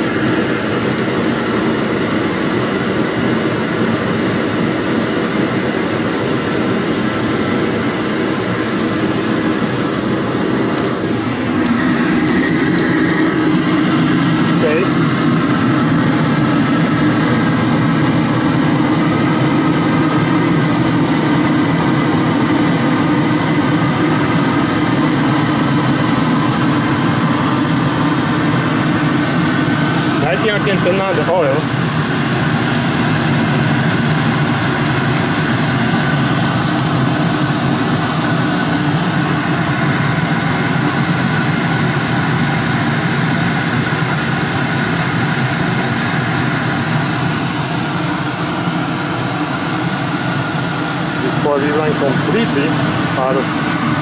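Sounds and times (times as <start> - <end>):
hair dryer whirring roar: 0.0 - 54.0.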